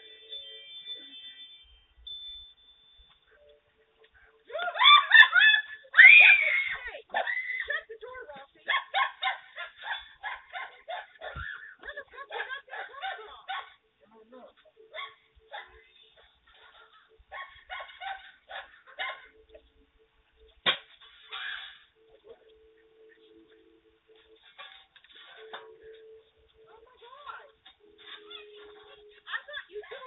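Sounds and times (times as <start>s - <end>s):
person screaming in fright: 4.6s - 7.7s
dog barking: 8.7s - 11.5s, 12.2s - 13.8s, 14.9s - 19.4s.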